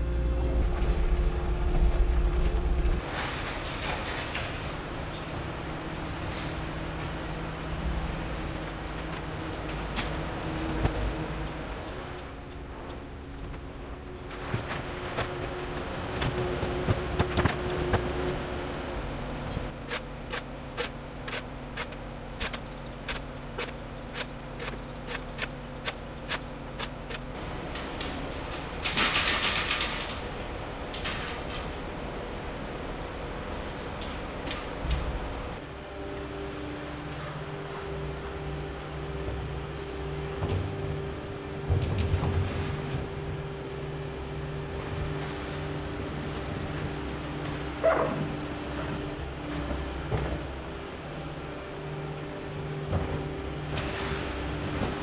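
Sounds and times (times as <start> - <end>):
diesel engine running: 0.0 - 55.0
regular clicks: 19.8 - 27.3.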